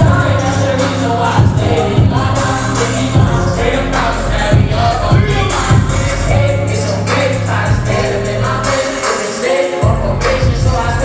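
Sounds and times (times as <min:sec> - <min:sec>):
crowd singing along: 0:00.0 - 0:11.0
hip-hop backing track with heavy bass: 0:00.0 - 0:11.0
performer rapping: 0:00.0 - 0:11.0.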